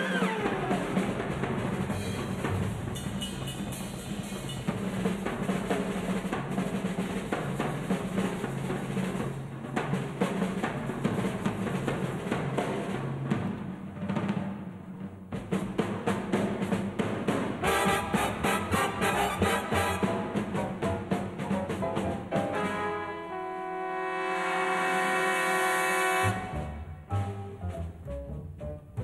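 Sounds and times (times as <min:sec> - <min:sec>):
snare drum rolls: 0:00.0 - 0:23.5, 0:24.3 - 0:29.0
cymbals: 0:00.0 - 0:27.9
bass drum: 0:15.2 - 0:22.6, 0:26.2 - 0:29.0.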